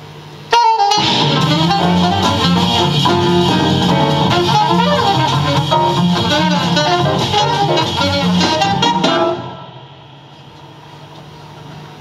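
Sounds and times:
low steady hum: 1.2s - 12.0s.

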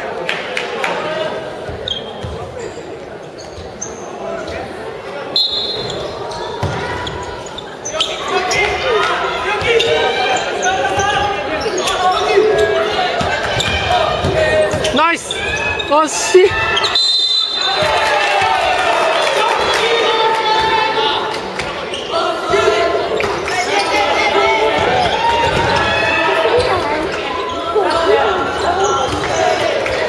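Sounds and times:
players calling and shouting: 0.0s - 30.0s.

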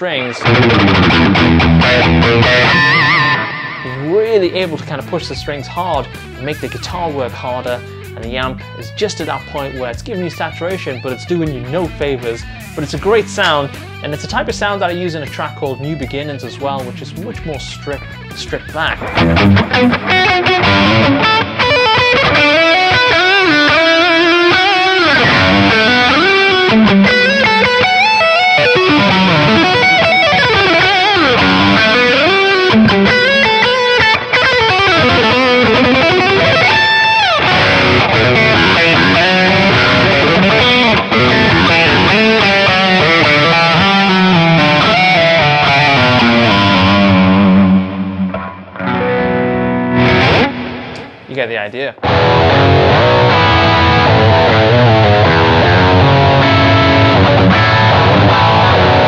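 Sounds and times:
overdriven electric guitar lead: 0.0s - 51.3s, 52.0s - 59.0s.

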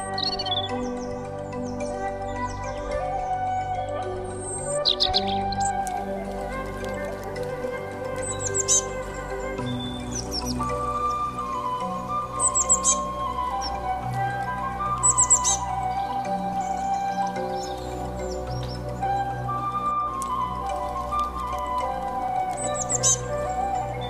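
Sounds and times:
slow background music: 0.0s - 24.0s.

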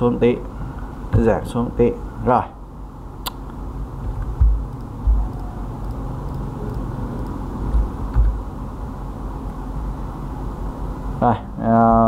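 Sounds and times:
low background rumble: 0.9s - 12.0s
dull low thumps: 4.0s - 5.4s, 7.6s - 8.5s.

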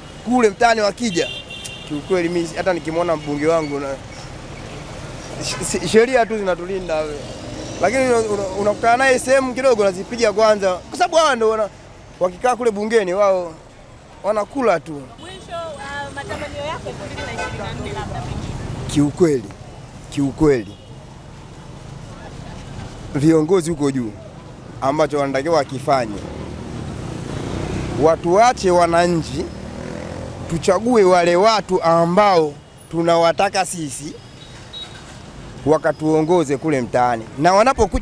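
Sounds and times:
street and traffic noise: 0.0s - 38.0s
man speaking: 0.3s - 4.0s, 5.4s - 13.6s, 14.2s - 15.2s, 18.9s - 20.8s, 23.1s - 24.2s, 24.8s - 26.2s, 30.5s - 34.2s, 35.6s - 38.0s.

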